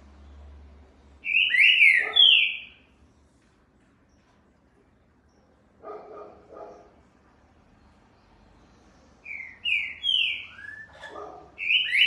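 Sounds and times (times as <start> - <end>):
bird singing whistled phrase: 1.2 - 2.8, 9.3 - 11.0, 11.6 - 12.0.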